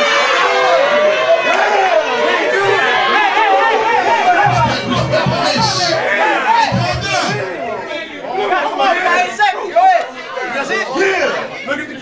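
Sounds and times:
men talking and calling out: 1.3 - 12.0.

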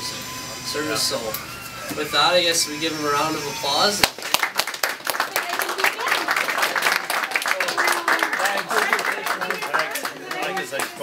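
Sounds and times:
people applauding: 4.0 - 11.0
voices: 5.3 - 11.0.

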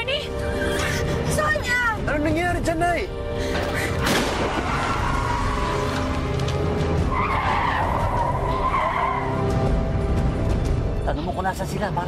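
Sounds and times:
car tyres squealing: 4.6 - 6.3, 7.0 - 9.6.

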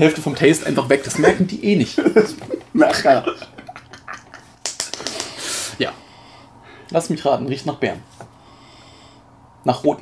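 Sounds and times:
men laughing: 0.6 - 5.3
long nasal sniff: 5.1 - 5.8.

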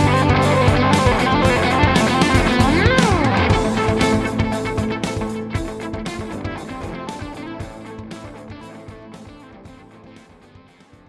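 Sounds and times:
instrumental guitar music: 0.0 - 11.0.

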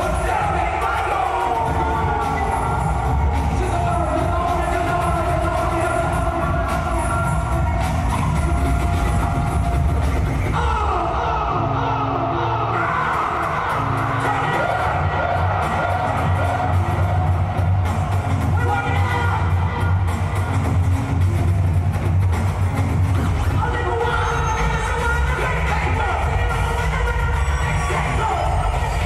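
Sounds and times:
hip-hop concert music over pa: 0.0 - 29.0.

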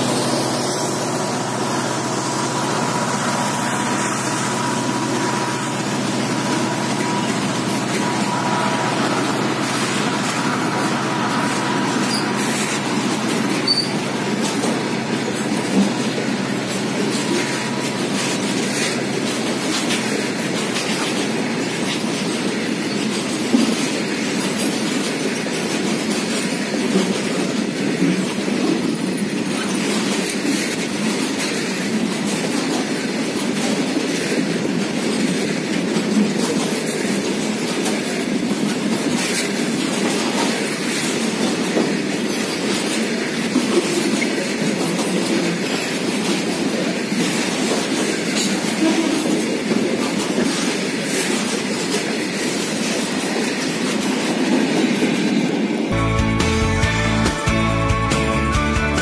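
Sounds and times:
wheels clacking on rail joints: 0.0 - 56.0
freight train wheels rumbling: 0.0 - 59.0.

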